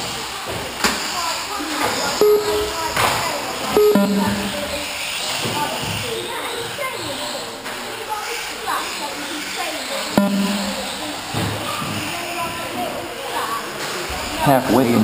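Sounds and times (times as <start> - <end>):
voices in a hall: 0.0 - 15.0.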